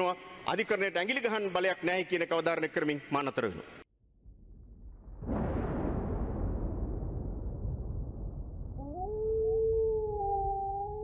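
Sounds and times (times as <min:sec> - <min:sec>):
low rumble: 0:04.0 - 0:11.0
wolf howling: 0:08.8 - 0:11.0.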